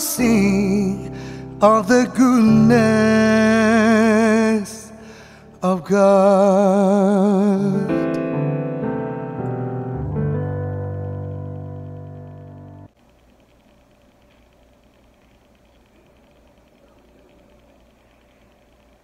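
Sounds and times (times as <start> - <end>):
digital piano chords: 0.0 - 13.0.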